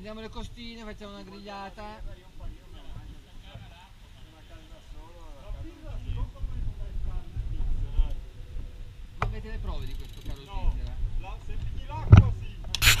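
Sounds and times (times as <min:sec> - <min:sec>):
faint group talk: 0:00.0 - 0:13.0
low rumble on microphone: 0:05.4 - 0:10.0.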